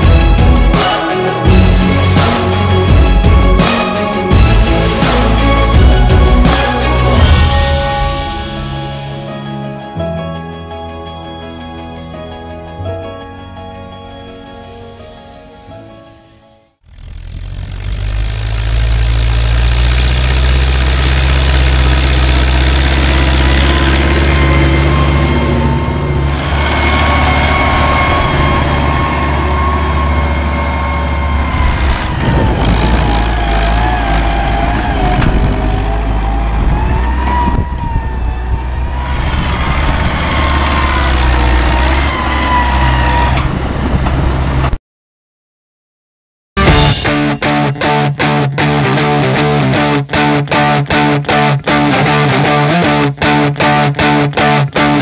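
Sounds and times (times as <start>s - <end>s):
tractor diesel engine under load: 16.8s - 44.8s.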